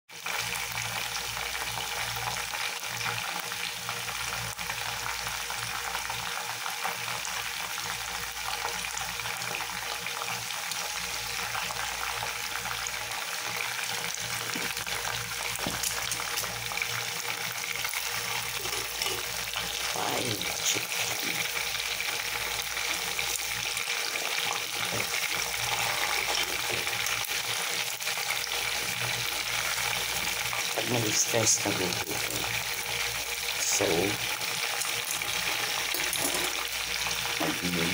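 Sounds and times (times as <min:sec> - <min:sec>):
chicken deep-frying in hot oil: 0:00.1 - 0:37.9.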